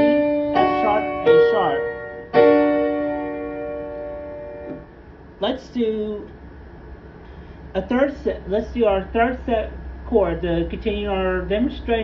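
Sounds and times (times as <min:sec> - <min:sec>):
piano chord ringing: 0:00.0 - 0:05.0.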